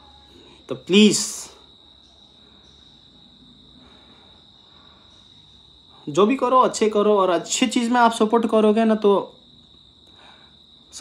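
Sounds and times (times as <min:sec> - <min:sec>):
faint high-pitched whine: 0:00.0 - 0:11.0
man speaking: 0:00.7 - 0:01.6, 0:06.0 - 0:09.3.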